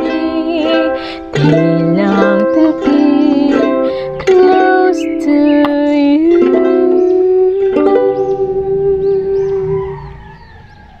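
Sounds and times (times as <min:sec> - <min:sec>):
ukulele chord: 0:00.0 - 0:09.6.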